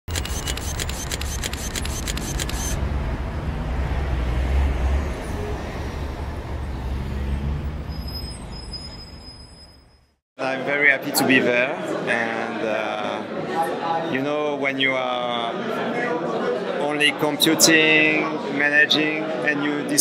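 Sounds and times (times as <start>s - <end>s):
rapid sharp clicks: 0.1s - 2.8s.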